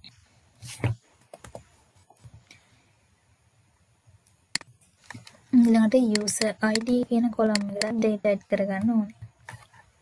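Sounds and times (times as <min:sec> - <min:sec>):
faint computer keyboard clicks: 0:06.1 - 0:08.1.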